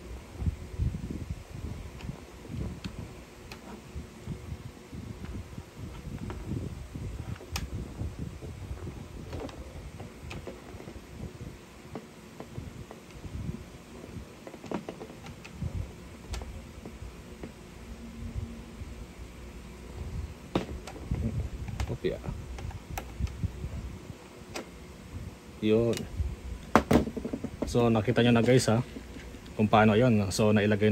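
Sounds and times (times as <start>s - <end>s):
handling rustle: 7.1s - 17.7s.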